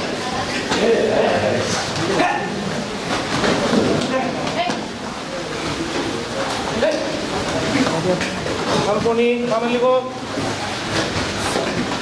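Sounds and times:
bustle of a group: 0:00.0 - 0:12.0.

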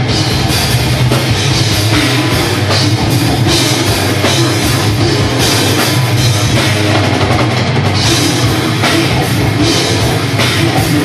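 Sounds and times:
distorted electric guitars: 0:00.0 - 0:11.0
drum kit with cymbals: 0:00.0 - 0:11.0.

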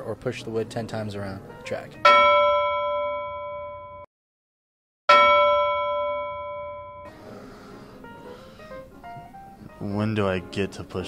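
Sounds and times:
bell-like ding: 0:02.0 - 0:04.1, 0:05.1 - 0:07.1.

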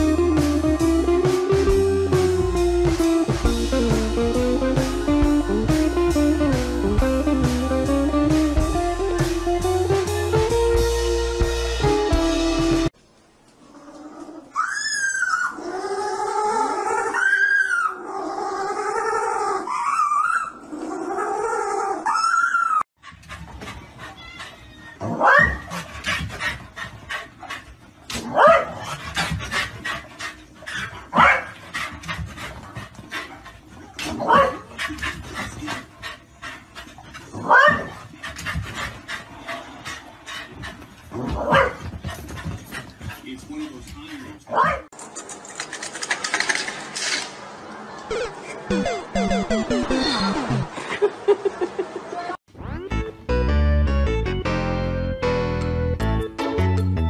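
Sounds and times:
guitar music: 0:00.0 - 0:12.9, 0:48.7 - 0:50.7
dog yelping and whining: 0:14.5 - 0:18.1, 0:18.7 - 0:22.9, 0:24.0 - 0:25.8.

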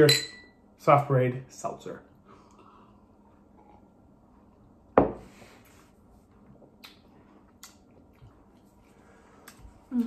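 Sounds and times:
glass thud on wooden table: 0:05.0 - 0:05.2.

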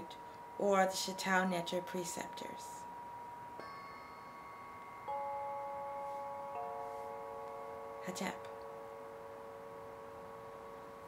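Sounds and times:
metal chimes ringing: 0:01.6 - 0:11.0.

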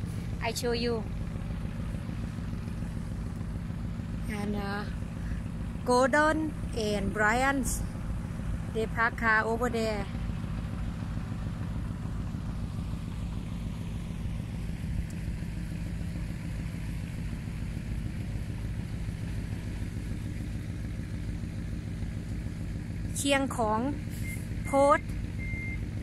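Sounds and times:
vehicle engine idling: 0:00.0 - 0:26.0.

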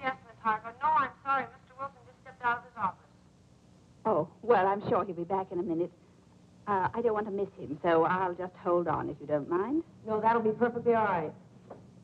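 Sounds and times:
woman talking: 0:00.0 - 0:03.1, 0:04.1 - 0:05.9, 0:06.7 - 0:11.4.

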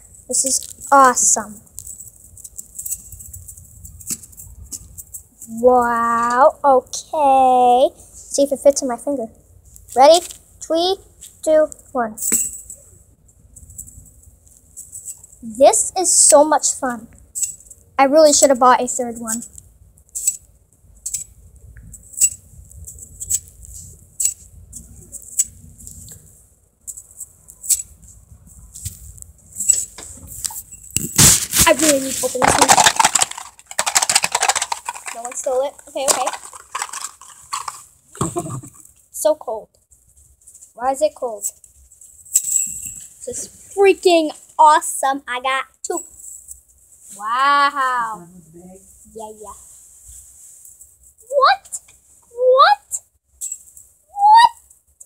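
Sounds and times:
coil spring toy clicking and rattling: 0:19.1 - 0:21.3, 0:22.0 - 0:24.5, 0:31.6 - 0:37.9
plastic spring toy clicking: 0:32.5 - 0:37.8.

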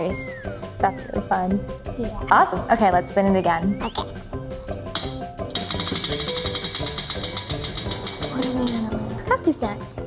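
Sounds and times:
prize wheel clicker ticking: 0:05.0 - 0:08.9.

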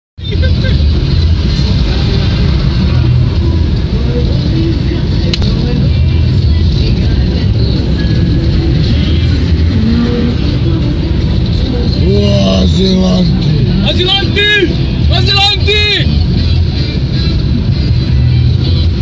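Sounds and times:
car cabin road rumble: 0:00.2 - 0:19.0.

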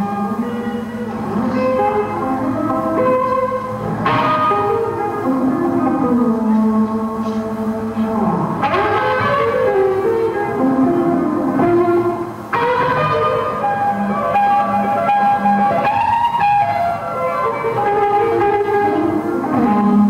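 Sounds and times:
bass guitar: 0:00.0 - 0:20.0
drums: 0:00.0 - 0:20.0
electric guitar lead with bending notes: 0:00.0 - 0:20.0.

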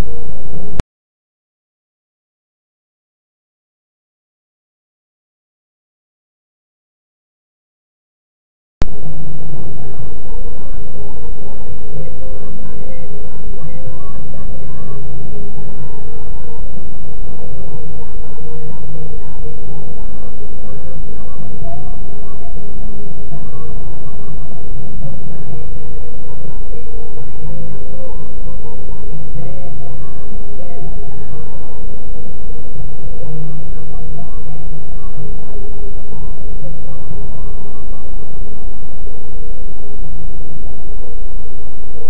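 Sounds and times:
faint voices: 0:08.8 - 0:39.6.

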